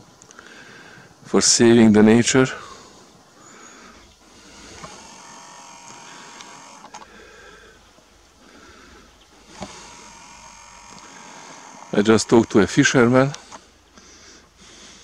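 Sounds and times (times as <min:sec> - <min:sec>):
quiet outdoor ambience: 0:00.0 - 0:15.0
camera zoom motor whirring: 0:04.2 - 0:07.1, 0:09.3 - 0:13.8.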